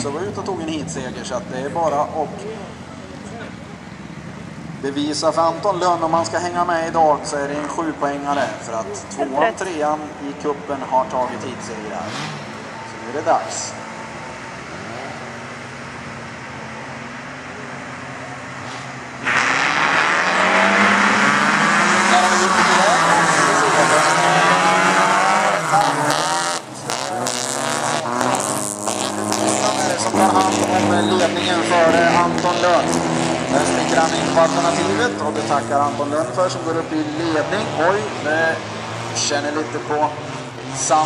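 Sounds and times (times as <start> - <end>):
car engines idling: 0.0 - 41.0
car engines revving: 0.0 - 41.0.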